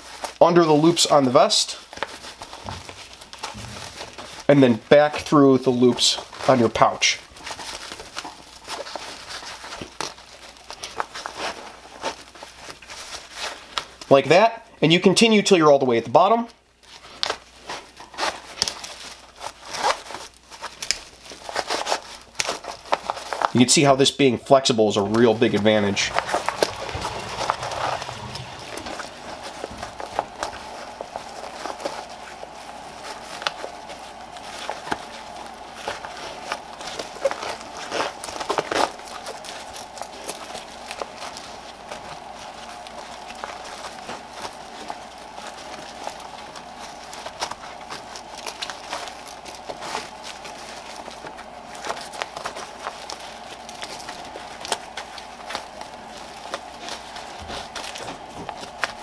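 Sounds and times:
nylon webbing rustling and scraping: 0.0 - 59.0
small clicks and scuffs: 16.8 - 23.6.

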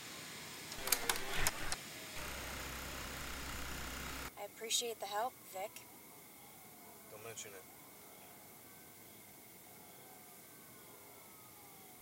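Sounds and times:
metal keypad buttons clicking: 0.8 - 1.8
steady low hum: 0.8 - 4.3.

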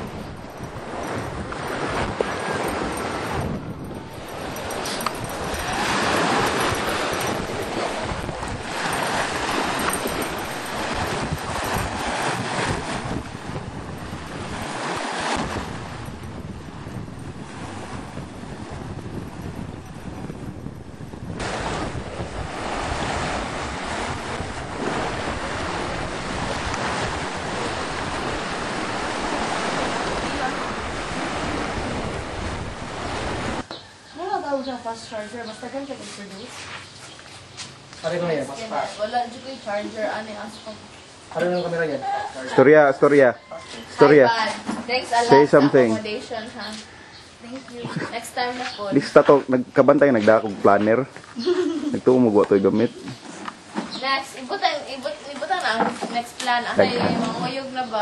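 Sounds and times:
sea waves washing onto beach: 0.0 - 34.6, 43.7 - 58.0
wind rumbling on microphone: 0.0 - 36.5.

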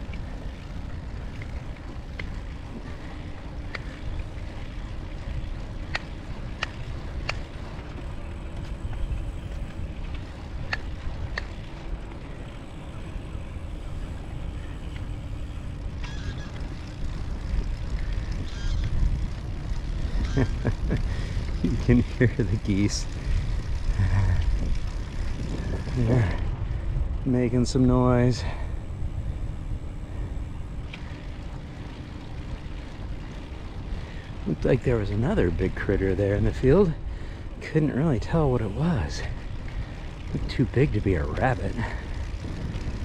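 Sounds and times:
bicycle tyres rolling: 0.0 - 43.0
wind rumble: 0.0 - 43.0
geese honking: 18.4 - 18.9.

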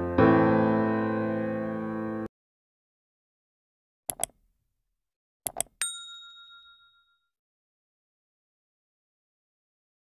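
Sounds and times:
bright bell ding: 5.8 - 7.3.

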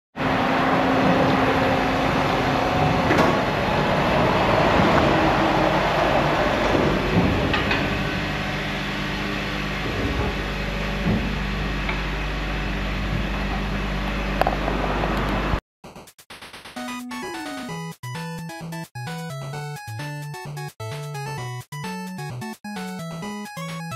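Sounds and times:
vehicle engine humming: 0.2 - 15.6.

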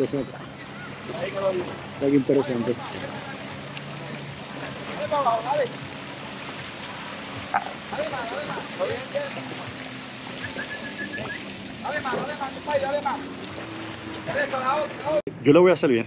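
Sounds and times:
low engine hum: 0.0 - 15.2
water running off boat hull: 0.0 - 15.2.

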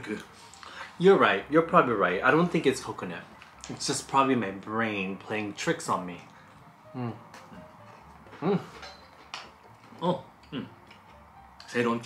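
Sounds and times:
man humming approval: 6.9 - 7.3.

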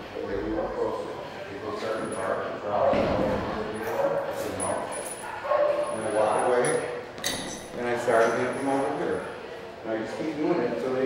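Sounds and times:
dog barking: 3.8 - 4.3, 5.2 - 6.0.

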